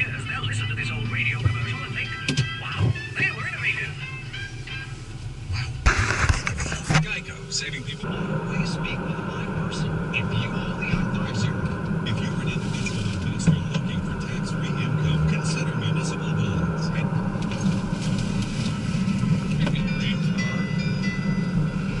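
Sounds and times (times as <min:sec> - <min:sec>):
car engine and road noise: 0:00.0 - 0:22.0.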